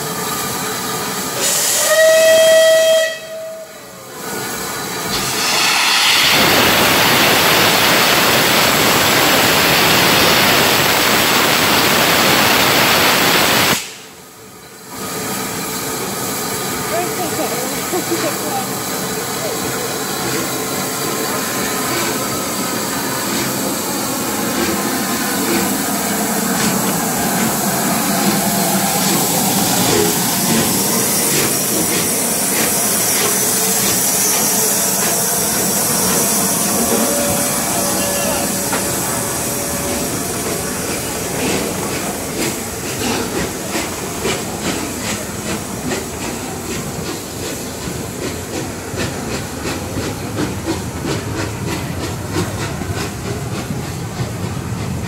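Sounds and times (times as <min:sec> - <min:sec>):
steam hissing: 0:00.0 - 0:03.0, 0:04.2 - 0:14.3, 0:14.9 - 0:55.0
locomotive exhaust and moving train: 0:00.0 - 0:55.0
steam locomotive whistle: 0:01.4 - 0:04.0, 0:34.3 - 0:41.1.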